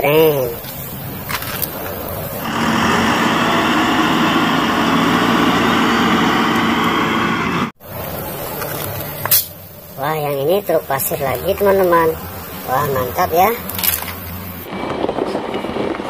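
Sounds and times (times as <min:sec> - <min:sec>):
wheel loader engine running: 0:00.0 - 0:16.0.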